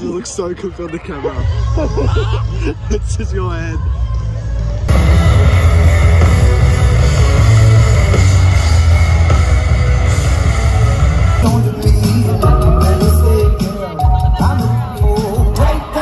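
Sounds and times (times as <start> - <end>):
live rock music with heavy bass: 4.9 - 16.0.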